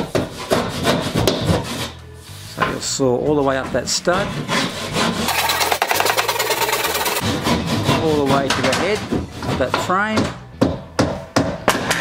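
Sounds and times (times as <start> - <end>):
saw cutting plasterboard: 4.2 - 10.0.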